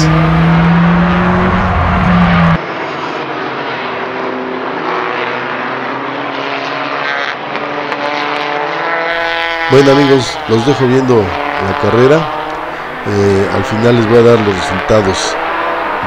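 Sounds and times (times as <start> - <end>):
race car engines at high revs: 0.0 - 16.0
race cars through a corner: 0.0 - 16.0.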